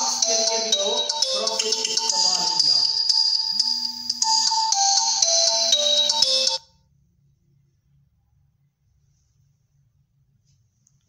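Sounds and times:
mobile phone ringtone melody: 0:00.0 - 0:06.8.

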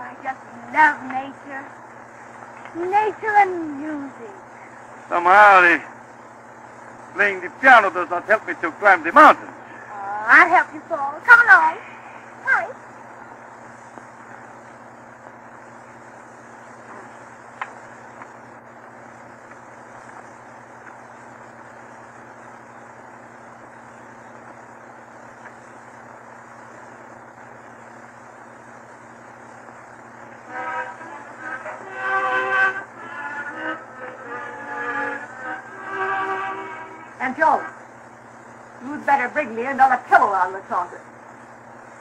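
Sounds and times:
record surface hiss and hum: 0:00.0 - 0:42.0
held pitched notes: 0:30.3 - 0:38.0.

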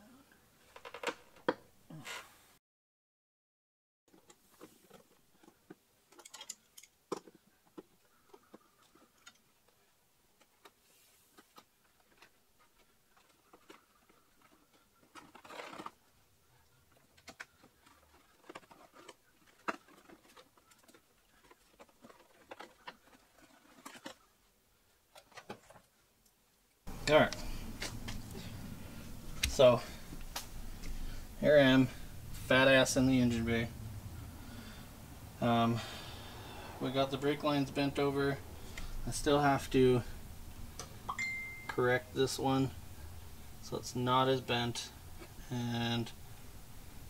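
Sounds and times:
scraping rustle: 0:10.7 - 0:24.5.

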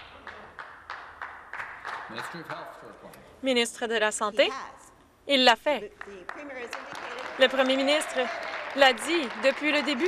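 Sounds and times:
people clapping: 0:00.0 - 0:02.9, 0:05.9 - 0:10.0.

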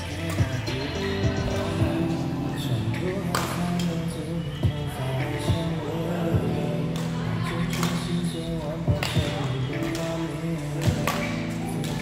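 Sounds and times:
music with singing in a hall: 0:00.0 - 0:12.0.

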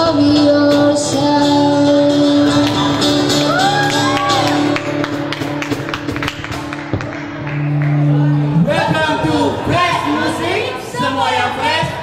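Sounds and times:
acoustic guitar strumming: 0:00.0 - 0:10.4.

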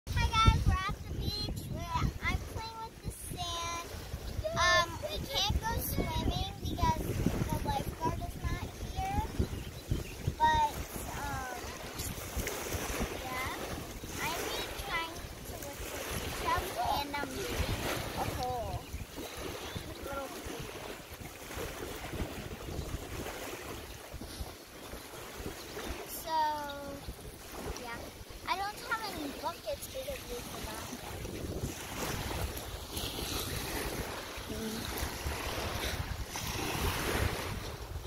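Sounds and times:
wind rumble on microphone: 0:00.1 - 0:38.0.

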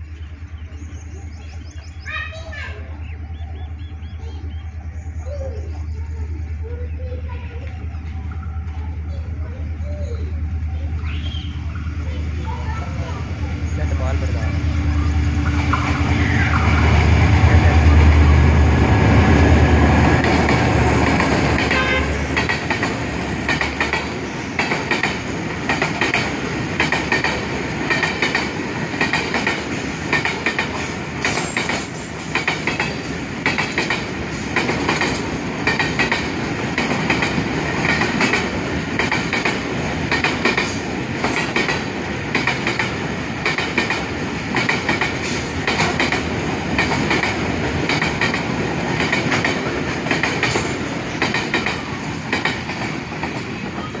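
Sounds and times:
freight train rumble: 0:00.0 - 0:54.0
wheels clacking over rail joints: 0:06.5 - 0:54.0.

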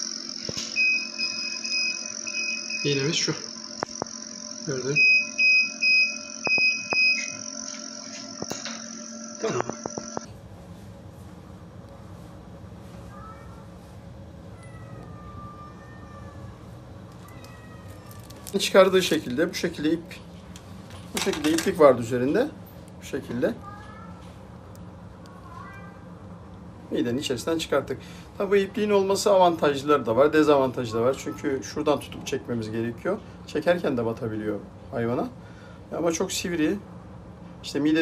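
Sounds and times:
fast high-pitched alarm beeping: 0:00.0 - 0:10.3
high electrical whine: 0:00.0 - 0:10.3
low hum: 0:00.0 - 0:10.4
cat meowing faintly: 0:13.0 - 0:13.9, 0:14.5 - 0:18.5, 0:23.6 - 0:24.4, 0:25.3 - 0:26.1.

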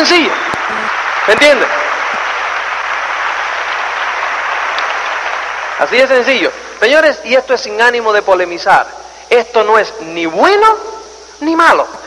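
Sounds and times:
large audience applauding: 0:00.0 - 0:07.0.

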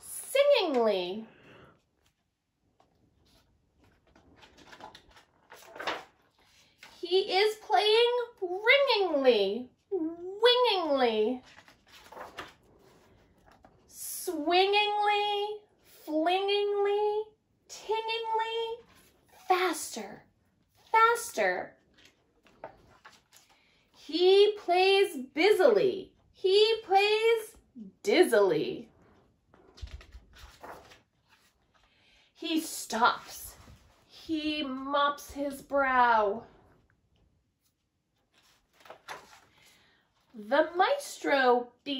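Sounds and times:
paper page turning: 0:02.8 - 0:07.0, 0:11.3 - 0:13.8, 0:18.7 - 0:19.5, 0:21.8 - 0:23.6, 0:29.5 - 0:31.9, 0:37.6 - 0:39.8.

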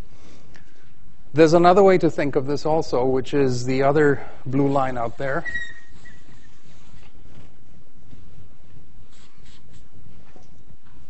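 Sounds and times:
background hiss and hum: 0:00.0 - 0:11.0
faint short scratches: 0:09.1 - 0:10.0.

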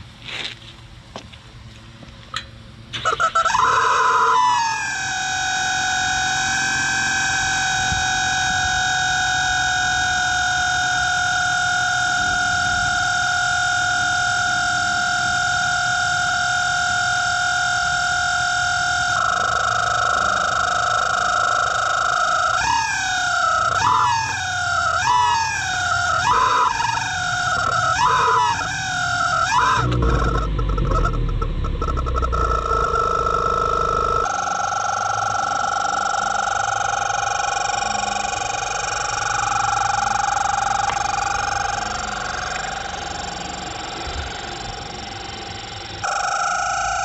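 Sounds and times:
engine throttle blips: 0:00.0 - 0:47.0
exhaust whistle shrieking: 0:03.0 - 0:47.0.

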